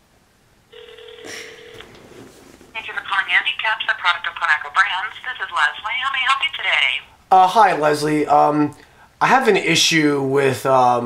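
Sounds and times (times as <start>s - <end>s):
telephone tone: 0.7s - 2.2s
person speaking over phone: 2.8s - 7.1s.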